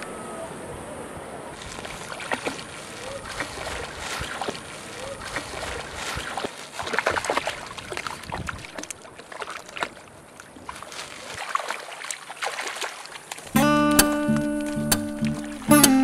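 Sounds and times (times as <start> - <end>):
shallow seawater splashing: 1.6 - 13.6
strummed acoustic guitar music: 13.5 - 16.0.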